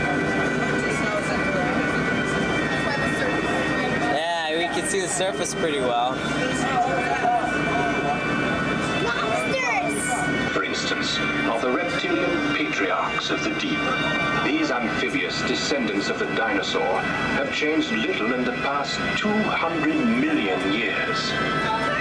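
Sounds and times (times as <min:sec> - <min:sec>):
indistinct voices: 0:00.0 - 0:22.0.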